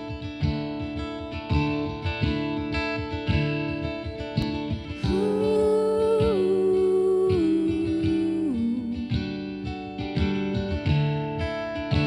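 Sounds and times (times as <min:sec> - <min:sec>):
plucked acoustic guitar: 0:00.0 - 0:12.0
woman humming: 0:05.0 - 0:09.1.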